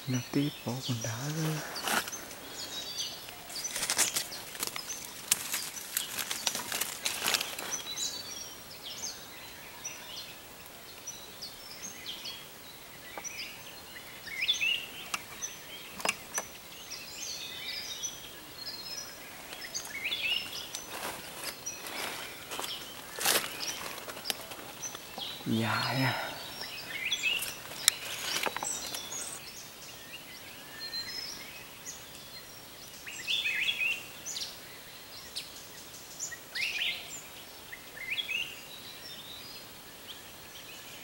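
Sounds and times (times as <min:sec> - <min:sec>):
small birds chirping: 0:00.0 - 0:41.0
sharp clicks and rustles: 0:03.3 - 0:07.8, 0:27.4 - 0:29.4.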